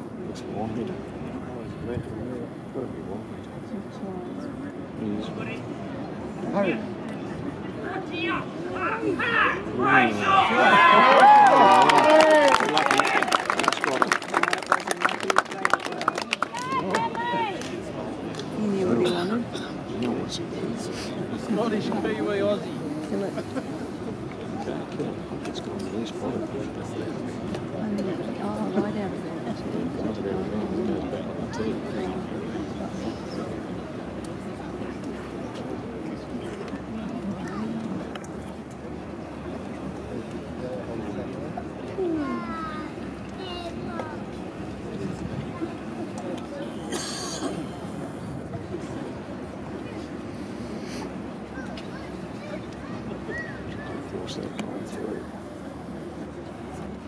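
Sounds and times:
low background voices: 0:00.0 - 0:57.0
voices calling out: 0:07.8 - 0:14.5, 0:50.9 - 0:54.4
people clapping: 0:10.7 - 0:18.5.

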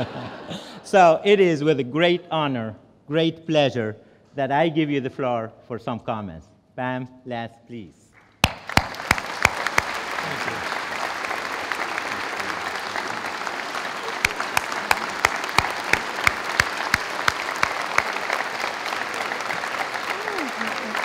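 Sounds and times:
sharp close claps: 0:08.1 - 0:21.0
audience applauding: 0:08.2 - 0:21.0.

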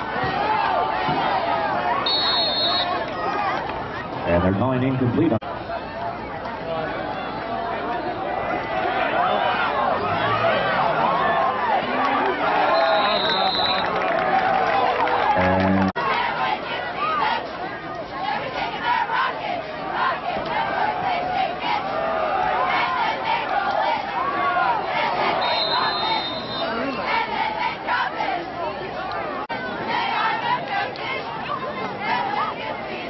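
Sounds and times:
crowd cheering and shouting: 0:00.0 - 0:33.0
short high whistle blast: 0:02.1 - 0:03.0, 0:25.4 - 0:26.8.

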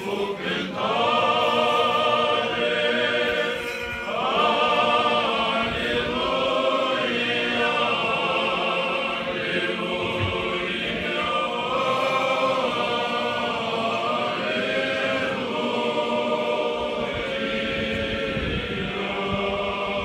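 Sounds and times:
choir singing a slow chant: 0:00.0 - 0:20.0.

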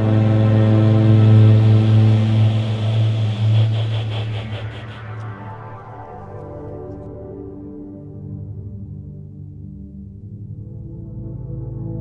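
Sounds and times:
faint high pulsing: 0:00.0 - 0:06.6
deep electronic drone: 0:00.0 - 0:09.4.

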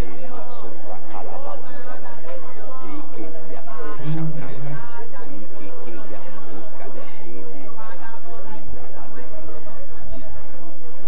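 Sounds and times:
congregation praying aloud: 0:00.0 - 0:10.7
voice holding a note: 0:03.8 - 0:04.7.

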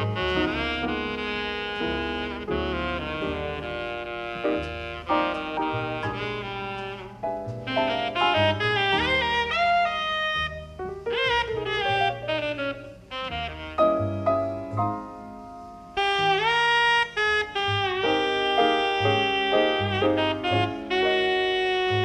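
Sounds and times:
tenor saxophone jazz solo: 0:00.0 - 0:22.0.

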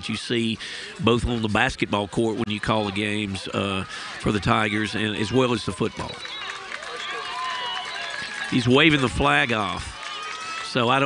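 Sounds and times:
distant voices: 0:00.0 - 0:11.0
stadium crowd murmur: 0:00.0 - 0:11.0.

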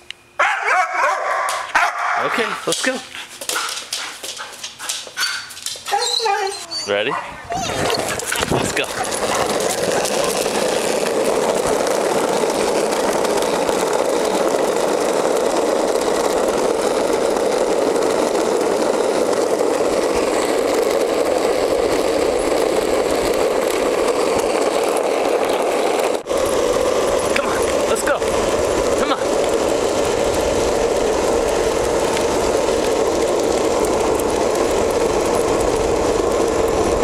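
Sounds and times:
skateboard wheels rolling on asphalt: 0:00.0 - 0:37.0.

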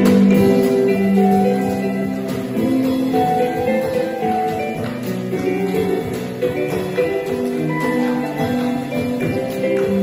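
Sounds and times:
drum kit playing: 0:00.0 - 0:10.0
electronic keyboard chords: 0:00.0 - 0:10.0.

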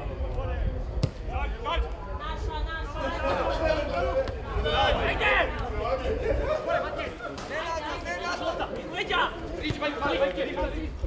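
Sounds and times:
football kicked hard: 0:00.9 - 0:01.3.

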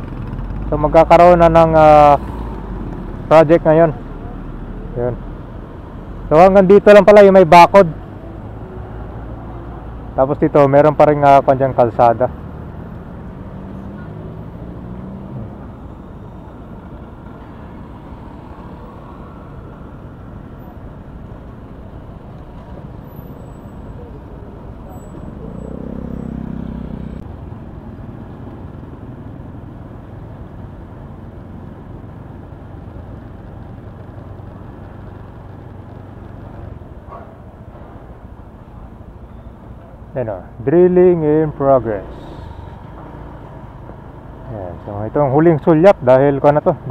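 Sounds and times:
city road traffic: 0:00.0 - 0:46.9
engine passing: 0:11.0 - 0:20.7, 0:22.4 - 0:28.9.

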